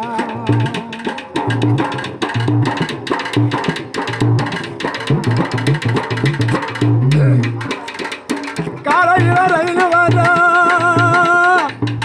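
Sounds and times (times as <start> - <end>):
drums beaten with sticks: 0.0 - 12.0.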